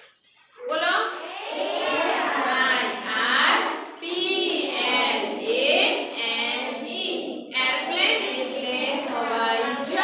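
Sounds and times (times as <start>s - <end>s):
voices chanting words: 1.1s - 10.0s.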